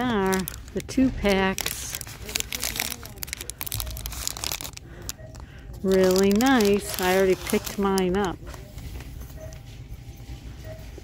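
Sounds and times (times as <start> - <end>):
plastic packaging crinkling: 0.0 - 9.2.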